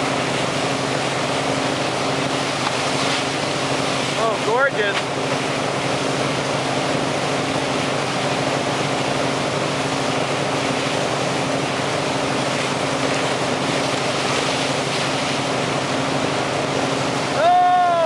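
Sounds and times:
boat engine droning: 0.0s - 18.0s
rushing wake water: 0.0s - 18.0s.

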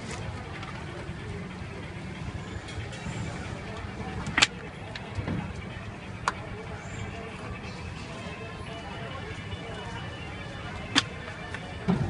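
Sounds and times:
street traffic rumble: 0.0s - 12.0s.

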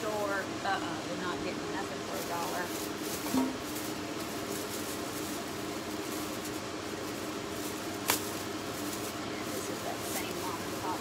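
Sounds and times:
low background hum: 0.0s - 11.0s
plastic bag rustling: 1.2s - 11.0s.

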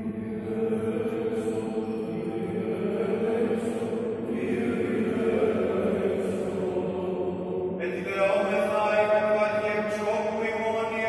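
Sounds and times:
men chanting in echoing hall: 0.0s - 11.0s.

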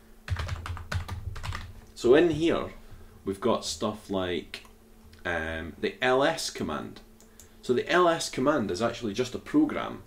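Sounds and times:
computer keyboard typing: 0.3s - 1.8s.

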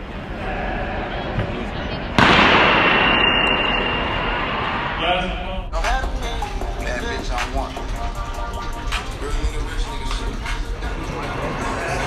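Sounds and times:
people talking: 0.0s - 2.7s, 5.0s - 8.0s, 9.2s - 12.0s
loud bang-like burst: 2.2s - 5.9s.

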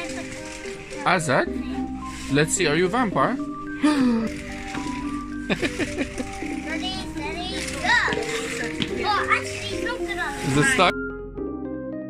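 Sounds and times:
background music: 0.0s - 12.0s
child laughing: 5.5s - 9.4s
child's excited voice: 6.6s - 10.9s.

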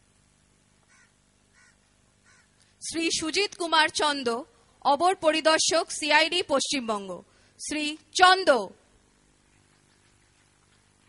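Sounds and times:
faint low hum: 0.0s - 11.0s
crow cawing: 0.9s - 2.6s.

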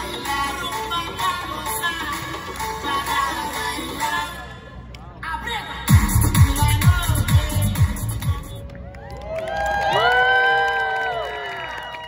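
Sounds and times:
crowd cheering woo: 8.7s - 12.0s.

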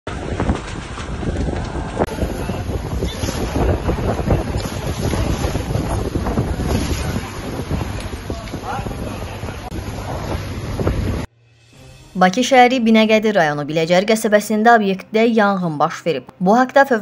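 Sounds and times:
fire hoses spraying water: 0.1s - 11.3s
wind buffeting microphone: 0.1s - 11.3s.

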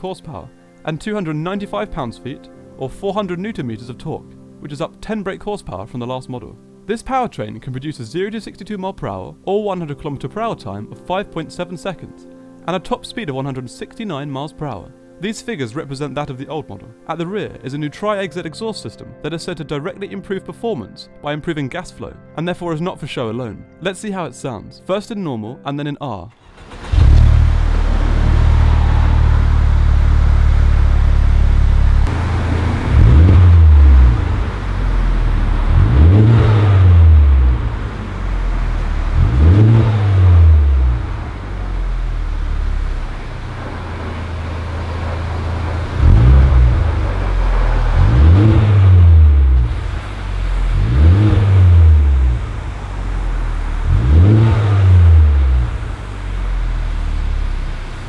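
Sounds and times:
car engine idling: 26.4s - 58.0s
car engine revving in blips: 26.4s - 58.0s.

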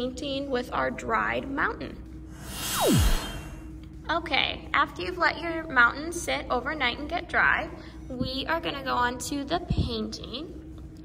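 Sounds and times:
whoosh transition effect: 2.3s - 3.7s
tone sweeping down in pitch: 2.5s - 3.6s.

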